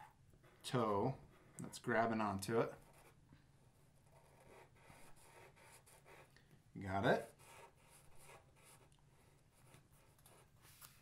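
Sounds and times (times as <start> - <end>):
marker scratching on paper: 3.9 - 6.3, 7.2 - 10.6.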